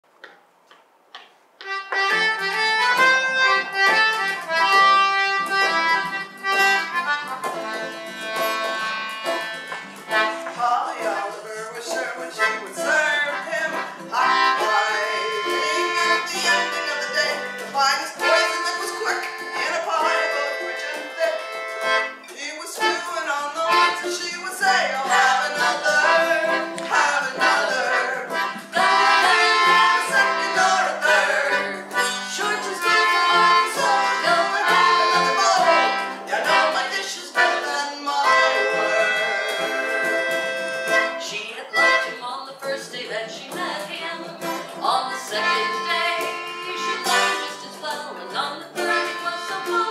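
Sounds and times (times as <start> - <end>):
concertina playing tune: 1.6 - 42.2, 43.4 - 49.9
strummed acoustic guitar: 1.6 - 49.9.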